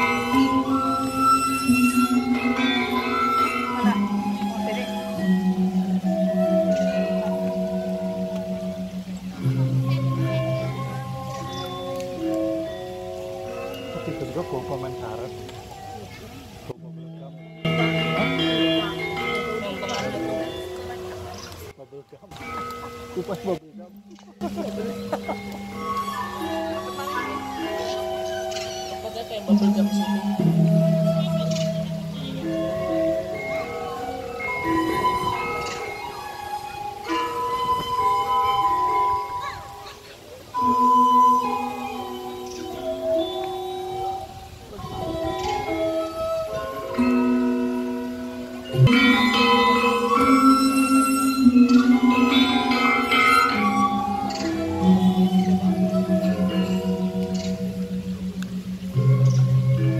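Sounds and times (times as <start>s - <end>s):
metallophones ringing: 0.0s - 15.5s, 16.6s - 59.9s.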